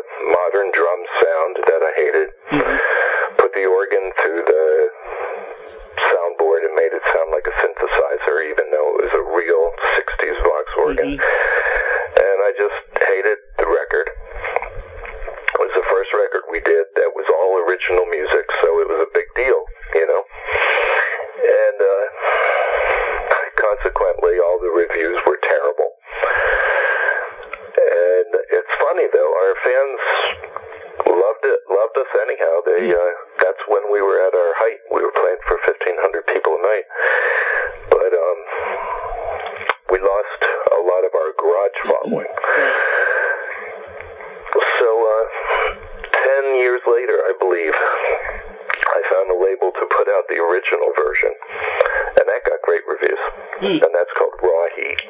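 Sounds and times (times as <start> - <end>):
person talking over telephone: 0.1 - 11.4, 12.2 - 14.1, 15.5 - 20.3, 31.0 - 36.9, 39.9 - 42.6, 48.8 - 55.0.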